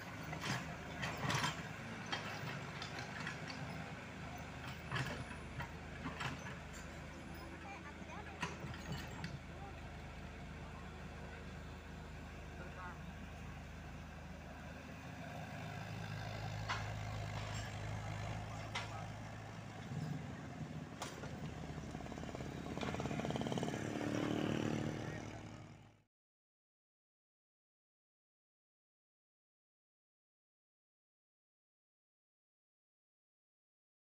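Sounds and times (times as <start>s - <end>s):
excavator engine humming: 0.0s - 25.9s
dump truck moving off: 0.0s - 26.0s.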